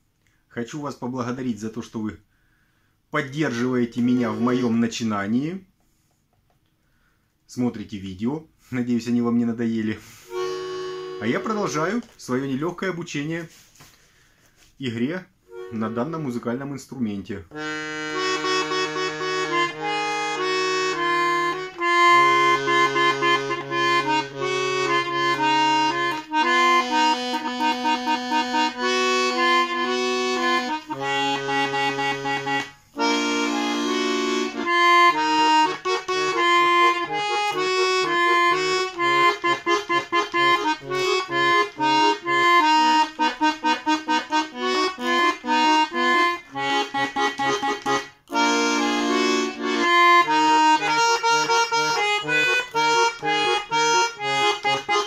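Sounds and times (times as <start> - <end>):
button accordion playing a tune: 3.5 - 5.1, 10.0 - 12.2, 15.5 - 16.4, 17.5 - 55.0.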